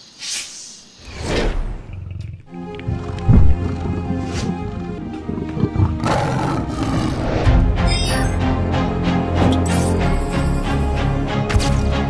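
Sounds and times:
big cat roar: 1.7 - 7.5
music with sustained chords: 2.5 - 12.0.

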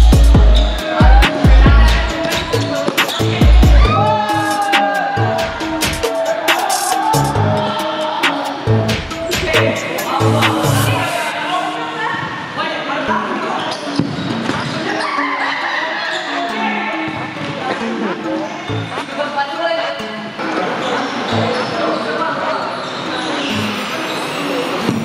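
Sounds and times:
background music: 0.0 - 25.0
voices: 0.0 - 25.0.

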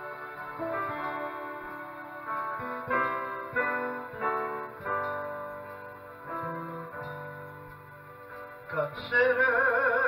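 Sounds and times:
electronic keyboard piano chords: 0.0 - 10.0.

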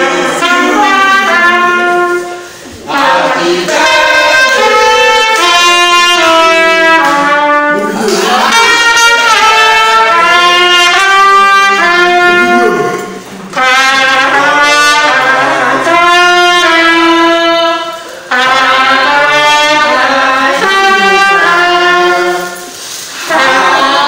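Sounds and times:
trumpet slow melody: 0.0 - 24.0
short breaths: 2.4 - 2.8.

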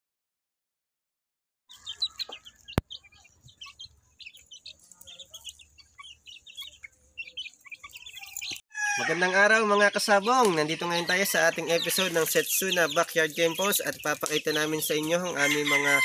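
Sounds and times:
chicks peeping and chirping: 1.7 - 16.0.

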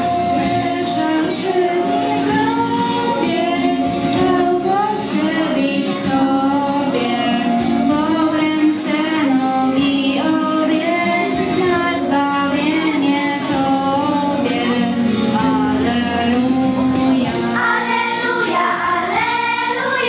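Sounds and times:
girls singing together: 0.4 - 20.0.

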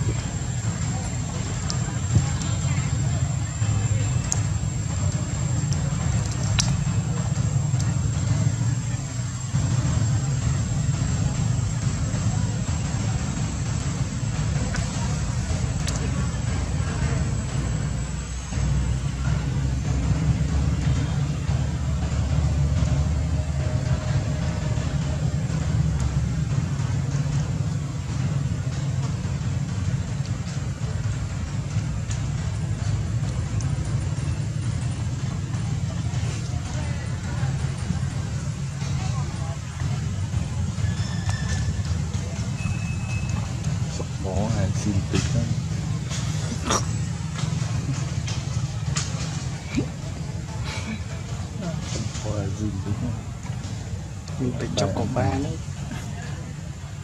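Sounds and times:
low outdoor rumble: 0.0 - 57.0.

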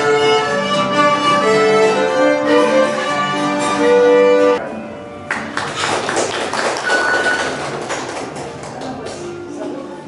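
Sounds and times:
fiddle and guitar music: 0.0 - 5.5.

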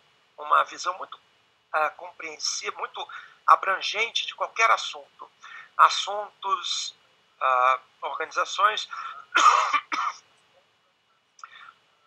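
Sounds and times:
person coughing: 9.3 - 10.2.

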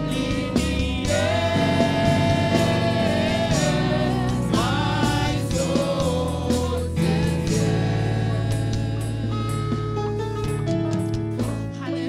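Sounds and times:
choir singing gospel: 0.0 - 10.0
live band playing: 0.0 - 12.0.

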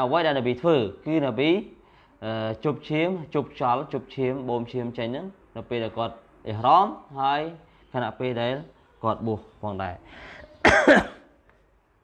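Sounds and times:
soft breath: 1.8 - 2.2, 7.6 - 8.0, 10.0 - 10.6
man clearing his throat: 10.6 - 11.3.

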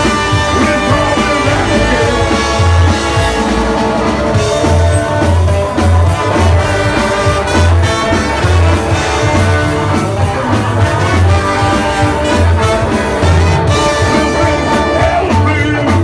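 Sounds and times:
live rockabilly band playing: 0.0 - 16.0
trumpet and trombone lead: 0.0 - 16.0
upright bass notes pulsing: 0.0 - 16.0.

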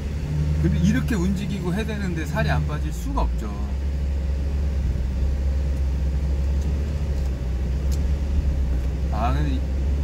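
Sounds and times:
road noise: 0.0 - 10.0
vehicle engine rumble: 0.0 - 10.0.

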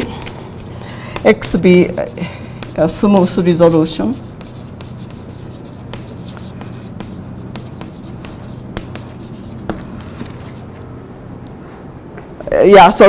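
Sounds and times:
chalk tapping and scratching: 0.0 - 10.7
steady low hum: 0.0 - 13.0.

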